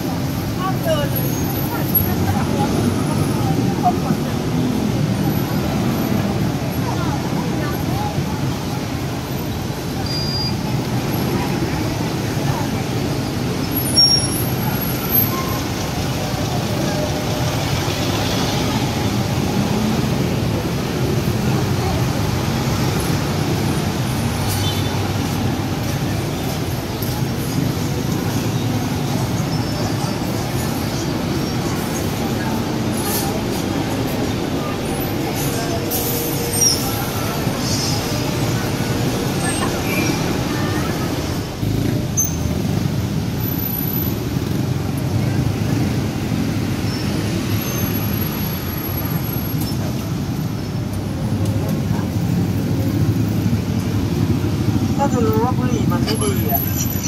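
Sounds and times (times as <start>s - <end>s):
people's voices: 0.0s - 57.0s
road traffic: 0.0s - 57.0s.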